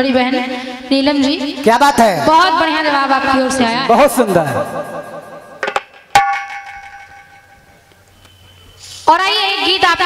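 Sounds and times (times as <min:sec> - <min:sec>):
sharp metallic strike ringing: 0:04.9 - 0:07.8.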